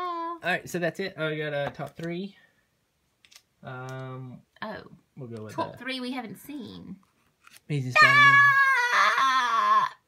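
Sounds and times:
high-pitched wailing cry: 0:08.0 - 0:10.0.

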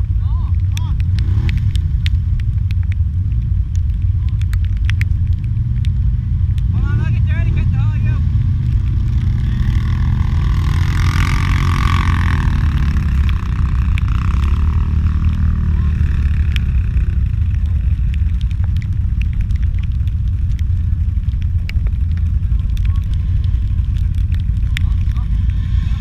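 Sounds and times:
atv engine revving: 0:00.0 - 0:26.0
atv engines idling: 0:00.0 - 0:26.0.

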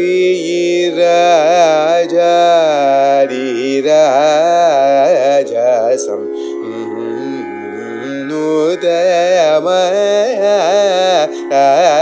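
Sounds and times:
person singing long ornamented notes: 0:00.0 - 0:12.0.

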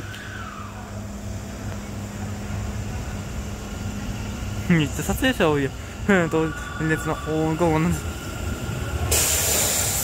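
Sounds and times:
electric train hum and rumble: 0:00.0 - 0:10.0
high whine falling in pitch: 0:04.8 - 0:09.1.

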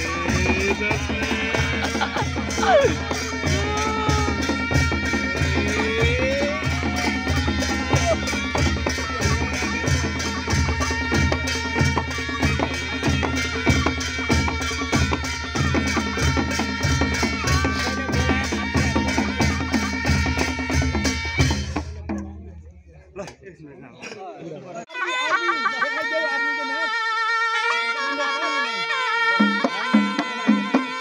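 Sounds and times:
wind instrument melody: 0:00.0 - 0:22.2, 0:24.9 - 0:31.0
barrel drums beating: 0:00.0 - 0:22.3.

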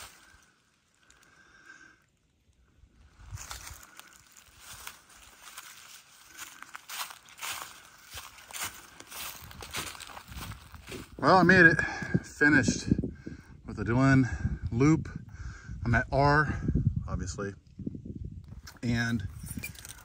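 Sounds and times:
footsteps crunching dry leaves: 0:00.0 - 0:01.0, 0:02.9 - 0:11.6.

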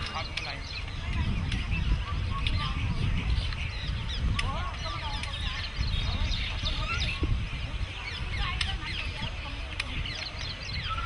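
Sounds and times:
birds chirping in chorus: 0:00.0 - 0:11.0
steady low rumble: 0:00.0 - 0:11.0.

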